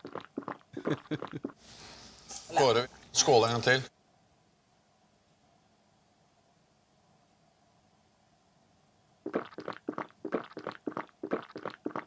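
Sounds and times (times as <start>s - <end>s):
rapid gulping: 0.0s - 1.6s, 9.2s - 12.0s.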